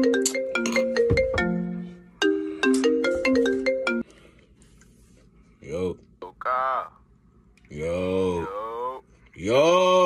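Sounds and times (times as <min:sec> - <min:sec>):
phone ringtone melody: 0:00.0 - 0:04.0.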